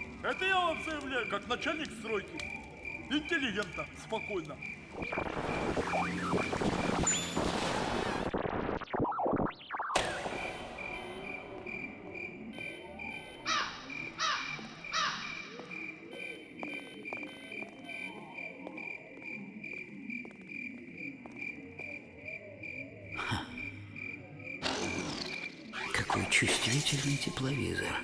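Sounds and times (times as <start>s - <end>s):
crickets chirping: 0.0s - 8.1s, 10.1s - 28.0s.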